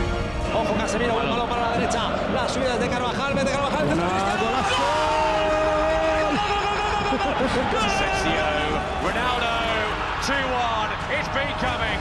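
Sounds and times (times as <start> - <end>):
stadium crowd noise: 0.0 - 12.0
football commentator excited voice: 3.8 - 11.3.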